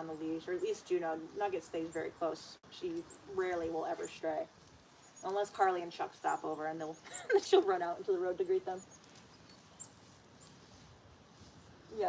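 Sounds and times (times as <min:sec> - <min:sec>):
small bird chirping: 0:00.0 - 0:12.0.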